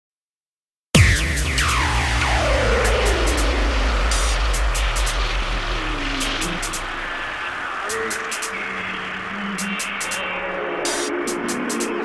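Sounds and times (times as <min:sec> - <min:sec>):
falling synth tone: 0:01.0 - 0:12.0
pulsing sub-bass: 0:01.0 - 0:12.0
hi-hat ticks: 0:07.8 - 0:12.0.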